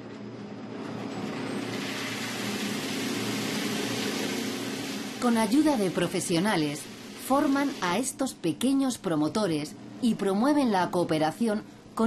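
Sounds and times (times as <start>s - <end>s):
roaster motor hum: 0.0s - 8.2s
beans pouring and rattling: 1.6s - 7.8s.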